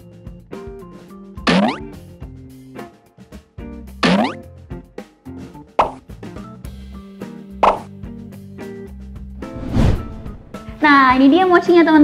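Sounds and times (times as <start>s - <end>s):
light background music: 0.0s - 12.0s
cartoon pops: 1.4s - 1.9s, 4.0s - 4.4s, 5.8s - 6.0s, 7.6s - 7.9s
cartoon rising bloop: 1.5s - 1.9s.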